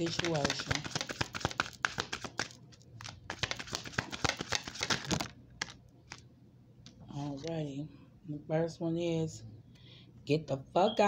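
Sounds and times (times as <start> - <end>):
cards being shuffled: 0.0 - 6.2.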